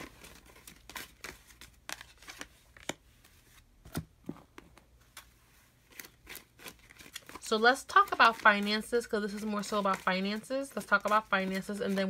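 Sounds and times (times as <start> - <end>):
cards clicking and rustling: 0.0 - 12.0.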